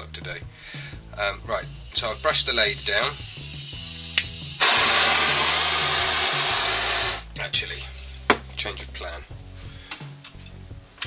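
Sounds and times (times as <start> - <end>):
blowtorch flame hissing: 0.7 - 7.3
blowtorch click: 1.9 - 7.2.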